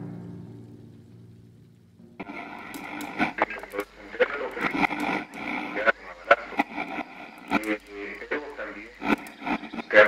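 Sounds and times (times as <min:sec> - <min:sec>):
low drum note: 0:00.0 - 0:02.6
radio crackle: 0:00.7 - 0:10.0
voice from a radio: 0:02.2 - 0:10.0.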